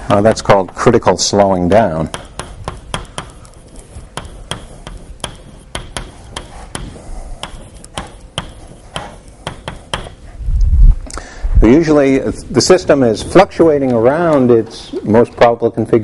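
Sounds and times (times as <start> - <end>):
chalk tapping on blackboard: 0.0 - 10.3.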